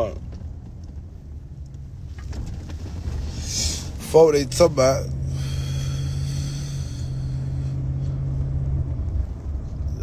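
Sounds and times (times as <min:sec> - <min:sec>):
car interior rumble: 0:00.0 - 0:10.0
low hum: 0:00.0 - 0:10.0.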